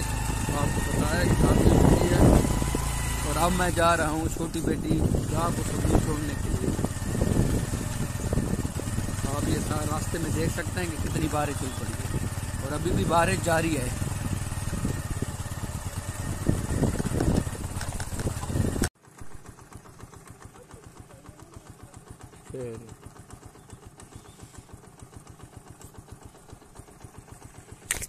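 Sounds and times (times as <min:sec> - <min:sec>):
motorcycle engine: 0:00.0 - 0:28.0
wind noise on microphone: 0:00.5 - 0:03.0, 0:04.8 - 0:09.7, 0:14.0 - 0:15.6, 0:16.2 - 0:18.9.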